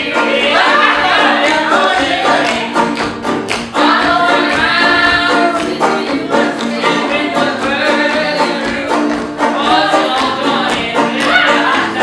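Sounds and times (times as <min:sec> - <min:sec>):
banjo strumming: 0:00.0 - 0:12.0
group of voices singing: 0:00.0 - 0:12.0.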